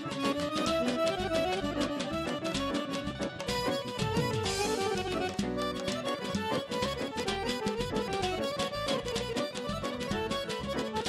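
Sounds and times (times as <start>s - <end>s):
steady drum beat: 0.0s - 8.2s
accordion: 0.0s - 11.0s
violin: 0.0s - 11.0s.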